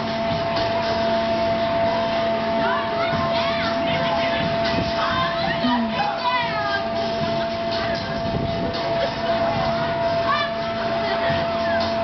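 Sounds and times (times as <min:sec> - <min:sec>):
ride machinery humming: 0:00.0 - 0:12.0.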